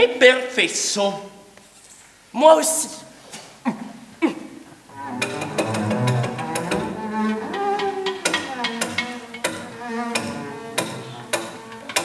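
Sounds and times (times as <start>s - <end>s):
sustained low string tones: 4.9s - 12.0s.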